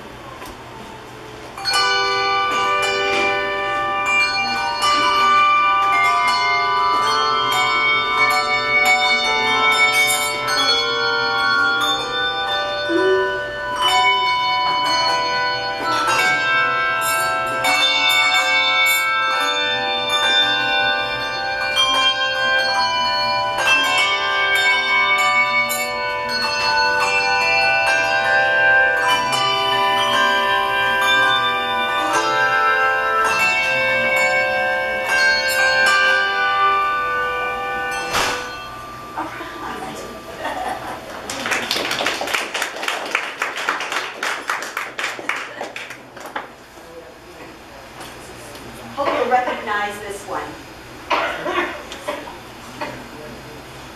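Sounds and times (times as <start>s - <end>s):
handbell choir playing: 1.5s - 46.2s.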